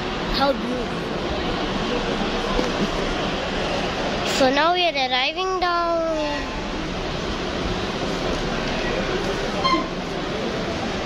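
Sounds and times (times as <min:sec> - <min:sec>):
crowded indoor hall noise: 0:00.0 - 0:11.0.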